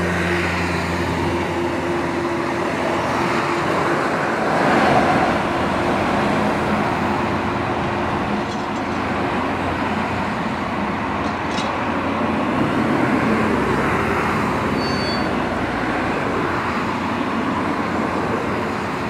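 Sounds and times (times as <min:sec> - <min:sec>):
backhoe diesel engine under load: 0:00.0 - 0:19.0.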